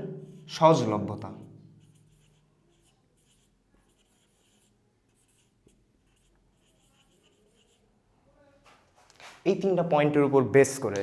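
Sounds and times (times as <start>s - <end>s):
marker pen writing on whiteboard: 1.4s - 8.0s.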